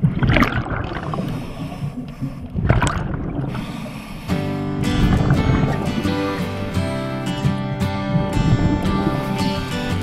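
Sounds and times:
exhaled bubbles: 0:00.0 - 0:01.7, 0:02.5 - 0:03.7, 0:04.8 - 0:06.7
scuba regulator breathing: 0:01.0 - 0:02.6, 0:03.4 - 0:07.3
background song: 0:04.5 - 0:10.0.

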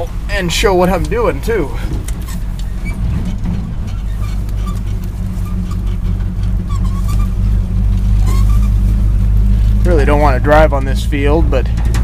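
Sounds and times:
truck engine droning: 0:00.0 - 0:12.0.

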